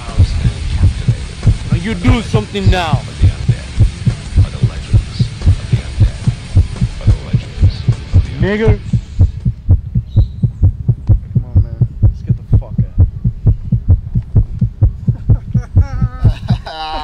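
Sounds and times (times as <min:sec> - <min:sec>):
voice: 0:00.0 - 0:08.9, 0:11.3 - 0:13.1
fast low heartbeat-like thumping: 0:00.0 - 0:16.6.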